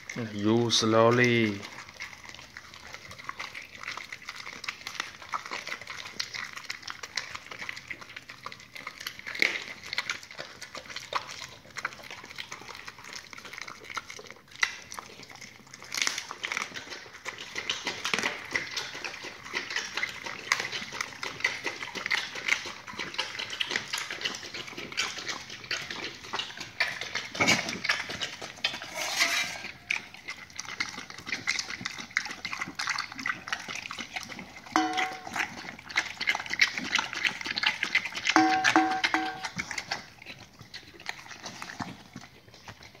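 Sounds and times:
dog chewing meat: 0.0s - 29.0s, 29.6s - 43.0s
dog lapping at metal bowl: 0.0s - 43.0s.

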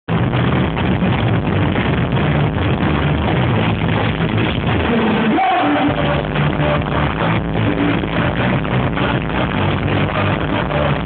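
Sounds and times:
punk rock band playing loud: 0.1s - 11.0s.

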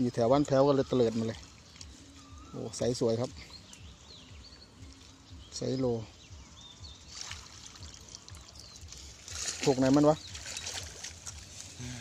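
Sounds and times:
water trickling: 0.0s - 11.9s.

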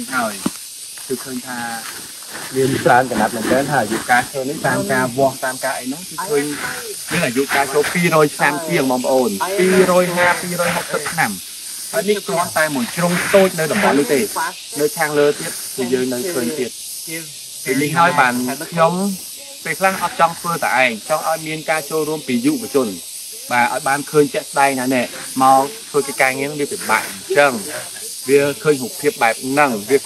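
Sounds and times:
man speaking: 0.0s - 0.5s, 1.1s - 1.8s, 2.5s - 11.4s, 12.0s - 30.0s
man talking: 0.0s - 0.5s, 1.1s - 1.9s, 2.5s - 11.4s, 12.0s - 30.0s
steady high hiss: 0.0s - 30.0s.

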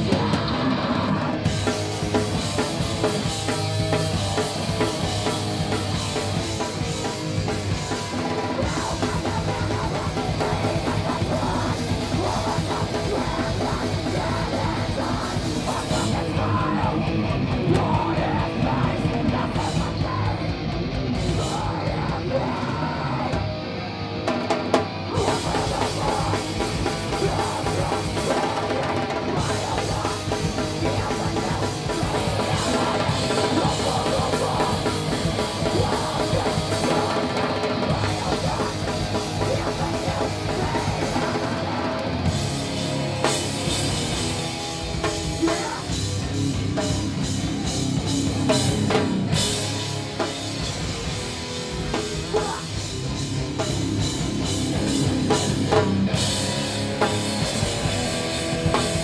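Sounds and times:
vocalist singing: 0.0s - 23.8s, 24.8s - 49.8s, 50.6s - 59.0s
heavy rock band playing: 0.0s - 59.0s.

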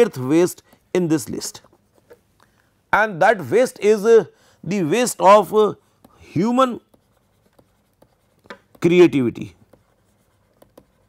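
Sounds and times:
digital pen scratching on tablet: 5.3s - 11.0s.

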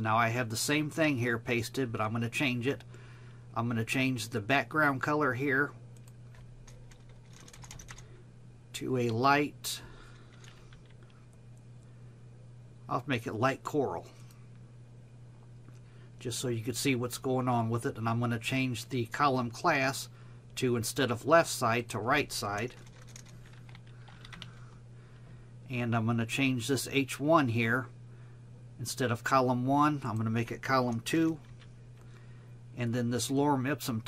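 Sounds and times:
person speaking: 0.0s - 2.9s, 8.7s - 11.0s, 16.2s - 24.7s, 28.8s - 34.0s
low steady hum: 0.0s - 34.0s
keyboard keys clicking: 6.0s - 8.0s, 22.6s - 24.5s.

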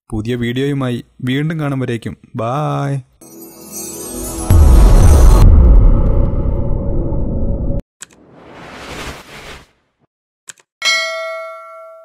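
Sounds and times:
bright bell-like ding: 10.8s - 12.0s.

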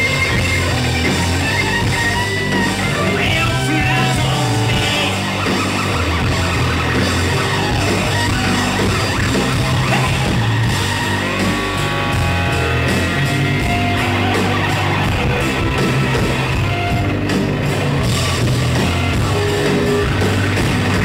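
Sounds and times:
rock band playing: 0.0s - 21.0s.

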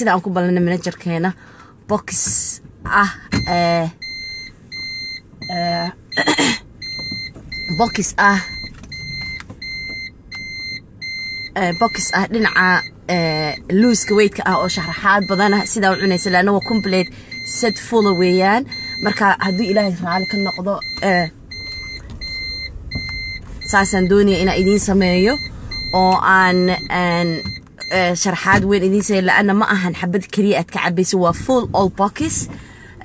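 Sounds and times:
electronic beeper long beeps: 3.4s - 28.1s
person speaking: 23.7s - 28.2s.

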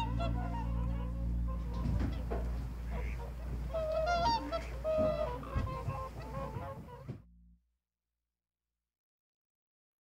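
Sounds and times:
swans honking: 0.0s - 7.2s
low rumble: 0.0s - 7.6s.

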